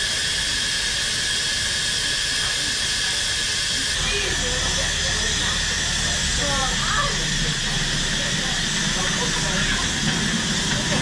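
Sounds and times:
steam locomotive hissing: 0.0s - 11.0s.

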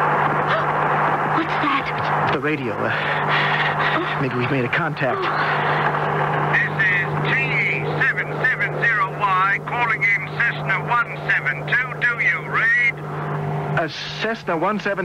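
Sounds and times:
light plane engine drone: 0.0s - 15.0s
radio crackling with squeals: 6.4s - 12.9s
garbled radio voice: 6.5s - 13.0s.

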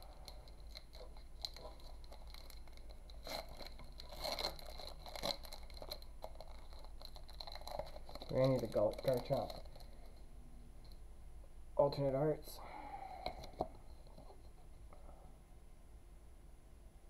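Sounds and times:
foil wrapper crinkling: 0.0s - 10.2s.

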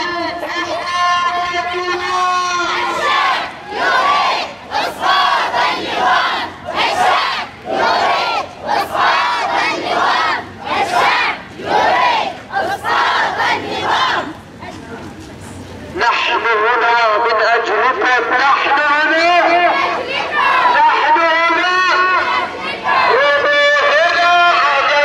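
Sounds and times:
crowd chanting slogans: 0.0s - 14.4s, 18.2s - 25.0s.

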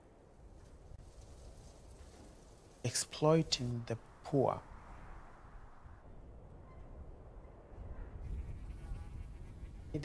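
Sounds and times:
faint insect-like buzz: 8.2s - 10.0s.

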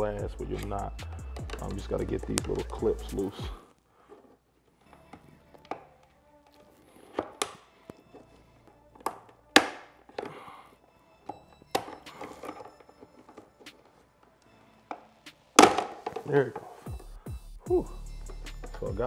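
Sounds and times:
plastic clips clicking and creaking: 0.5s - 2.9s, 4.1s - 10.5s.

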